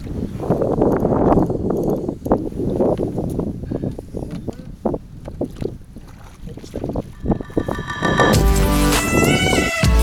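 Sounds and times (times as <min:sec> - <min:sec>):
wind on microphone: 0:00.0 - 0:09.9
water slapping against boat hull: 0:05.2 - 0:07.0.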